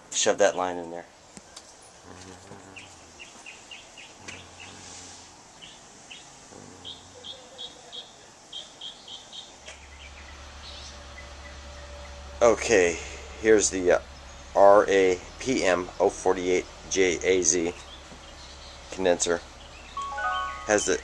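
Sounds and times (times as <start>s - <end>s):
faint distant voices: 0.1s - 9.7s
small bird chirping: 1.4s - 12.2s, 17.7s - 21.0s.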